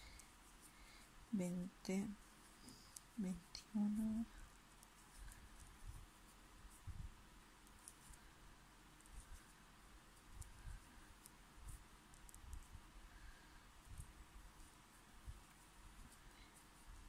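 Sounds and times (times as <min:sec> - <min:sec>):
soft yarn handling noise: 0:00.0 - 0:17.0.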